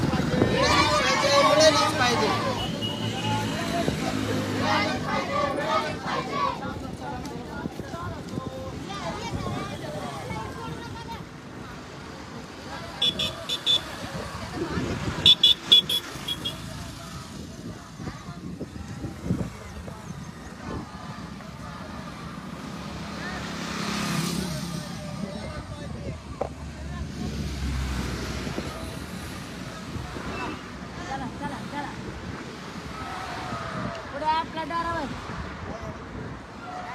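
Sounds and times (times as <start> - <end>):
vehicle passing: 0.0 - 7.0, 21.0 - 31.9
scattered voices: 0.0 - 36.9.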